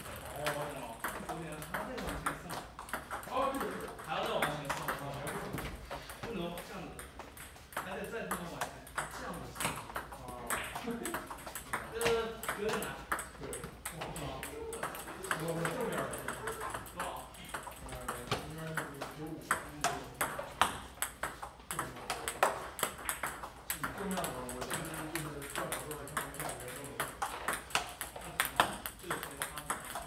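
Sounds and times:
ping-pong balls bouncing on table: 0:00.0 - 0:30.0
ping-pong balls struck with paddles: 0:00.0 - 0:30.0.

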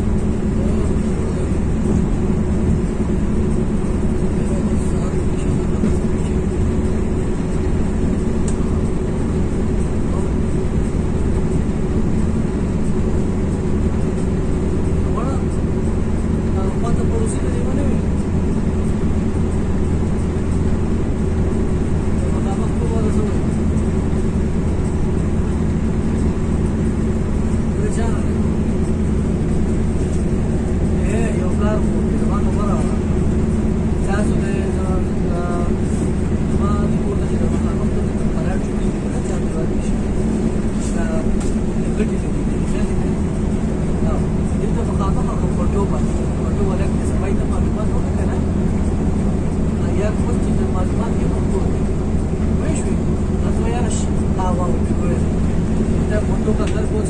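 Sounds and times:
coach engine drone: 0:00.0 - 0:57.0
road noise: 0:00.0 - 0:57.0.

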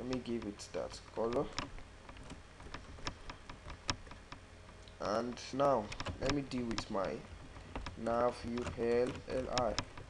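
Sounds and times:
keyboard and mouse clicks: 0:00.0 - 0:00.6, 0:01.2 - 0:10.0.

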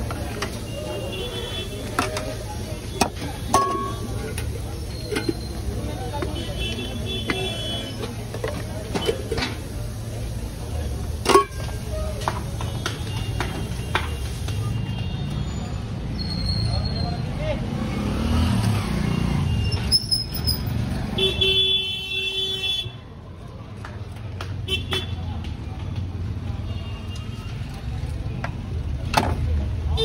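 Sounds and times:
street traffic rumbling: 0:00.0 - 0:30.0
vehicle horn: 0:00.7 - 0:02.0, 0:06.3 - 0:08.0, 0:21.2 - 0:23.0.

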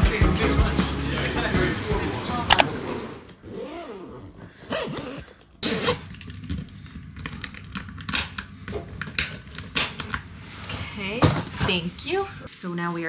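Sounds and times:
suitcase zipping: 0:03.4 - 0:07.3
suitcase clicks and rattles: 0:06.1 - 0:09.6.

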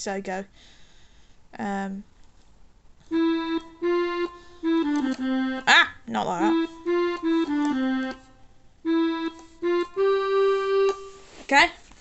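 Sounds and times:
electronic keyboard accordion notes: 0:03.1 - 0:11.5.

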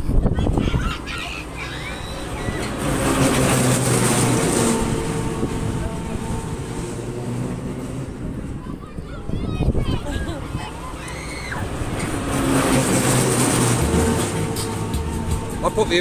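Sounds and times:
ferris wheel machinery humming: 0:00.0 - 0:16.0.

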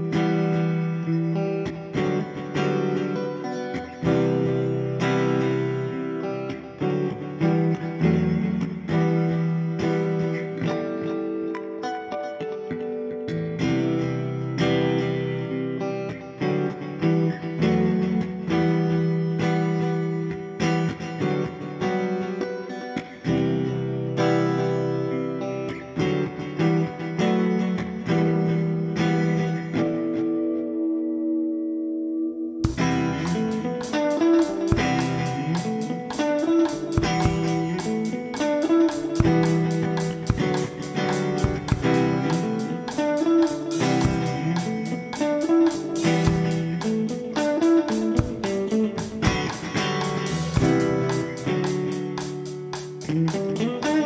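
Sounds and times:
electric guitar melodic lines: 0:00.0 - 0:54.0
drum kit with cymbals: 0:32.6 - 0:54.0.

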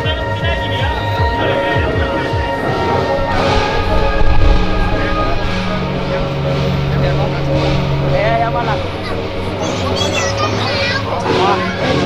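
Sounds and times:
low engine hum: 0:02.5 - 0:10.0.

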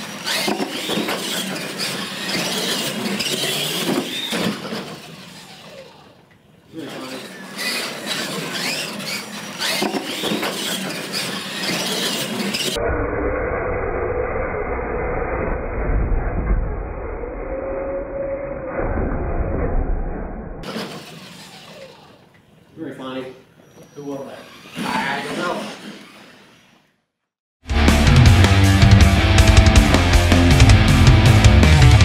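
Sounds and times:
slowed low rumble: 0:12.8 - 0:20.6.

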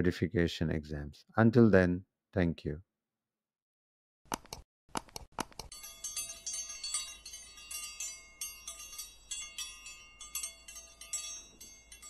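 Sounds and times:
high bell-like chimes: 0:05.7 - 0:12.0.

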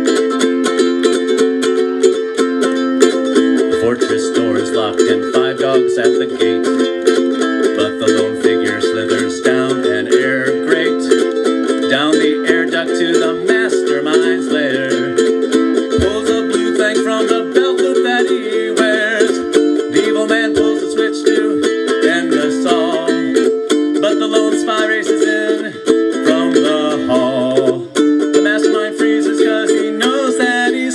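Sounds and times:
ukulele strumming: 0:00.0 - 0:30.9
low thump: 0:15.9 - 0:16.5.

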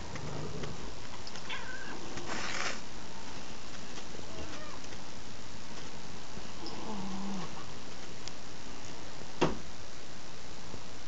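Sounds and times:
cat yowling: 0:01.5 - 0:02.0.

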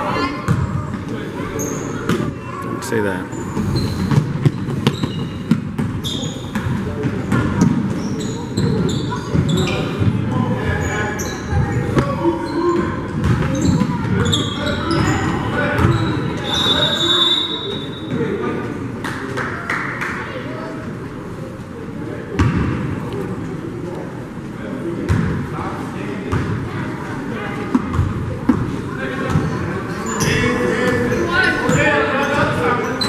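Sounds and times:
sneakers squeaking: 0:00.0 - 0:18.5, 0:26.3 - 0:26.7, 0:27.6 - 0:33.0.

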